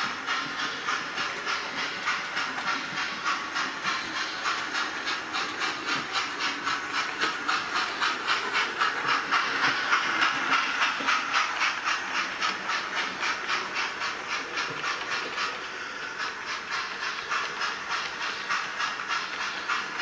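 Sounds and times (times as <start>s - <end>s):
model train steam chuffing: 0.0s - 20.0s.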